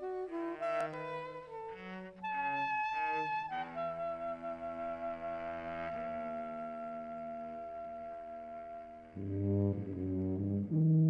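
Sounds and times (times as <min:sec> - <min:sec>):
soprano saxophone long note: 0:00.0 - 0:11.0.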